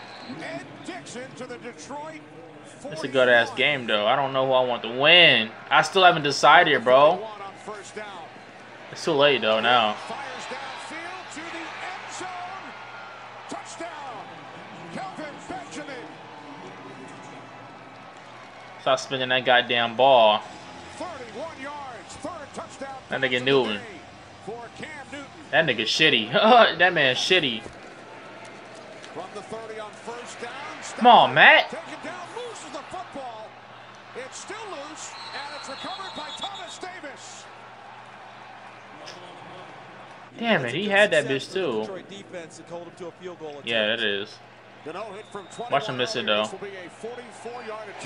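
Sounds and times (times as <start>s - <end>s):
stadium crowd noise: 0.0s - 48.0s
commentator talking: 0.2s - 8.2s, 8.9s - 11.1s, 18.8s - 20.4s, 21.2s - 24.0s, 24.7s - 27.7s, 29.2s - 33.5s, 40.3s - 48.0s.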